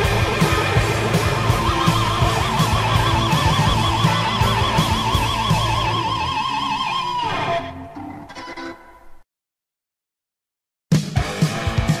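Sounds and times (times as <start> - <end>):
hard rock music: 0.0 - 8.3, 10.9 - 12.0.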